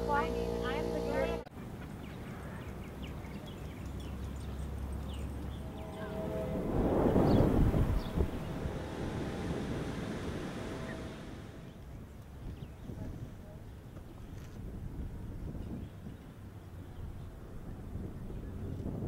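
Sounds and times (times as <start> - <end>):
wind buffeting microphone: 2.8 - 19.0.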